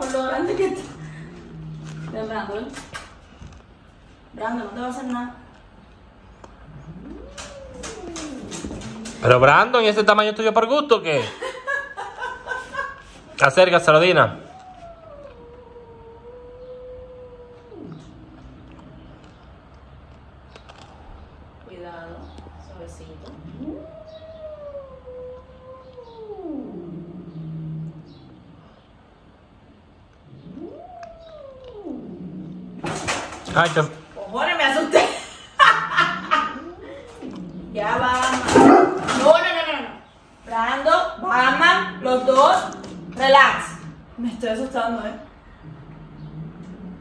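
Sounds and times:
cat yowling: 6.7 - 9.6, 14.0 - 18.8, 22.2 - 28.3, 30.2 - 32.9, 41.2 - 44.0.

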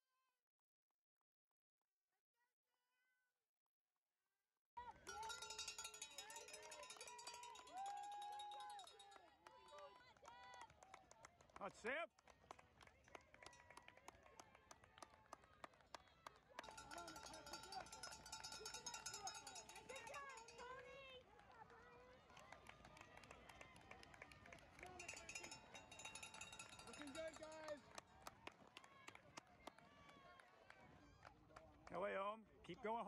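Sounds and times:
spectators shouting and cheering: 4.8 - 10.6, 16.5 - 27.8.

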